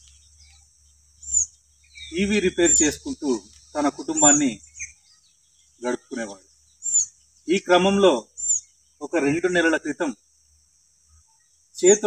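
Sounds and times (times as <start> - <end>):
faint outdoor hiss: 0.0 - 12.0
man speaking: 2.1 - 4.6, 5.8 - 6.4, 9.0 - 10.2, 11.8 - 12.0.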